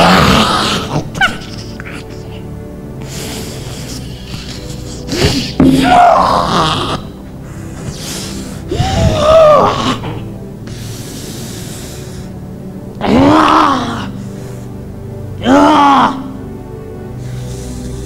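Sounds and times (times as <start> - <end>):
background music: 0.0 - 18.0
man's wordless cries: 5.6 - 7.2.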